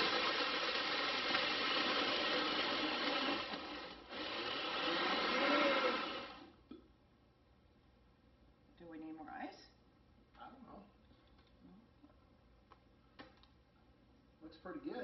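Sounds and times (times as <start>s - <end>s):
blender crushing ice: 0.0s - 6.5s.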